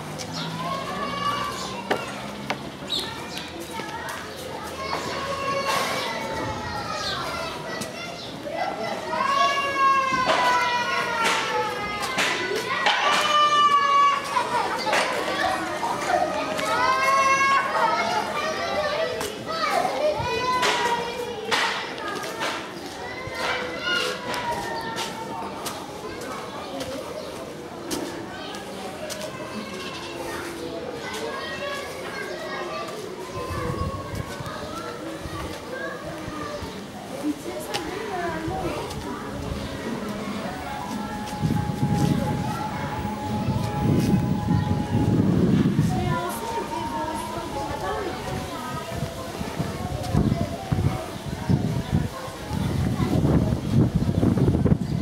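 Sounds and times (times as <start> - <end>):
children chattering and calling out: 0.0 - 55.0
children shouting while playing: 0.4 - 2.3, 2.9 - 25.5.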